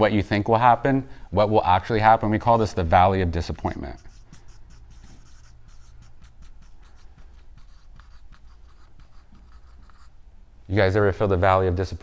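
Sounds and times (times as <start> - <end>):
low steady hum: 0.0 - 12.0
marker writing on a whiteboard: 3.4 - 10.2.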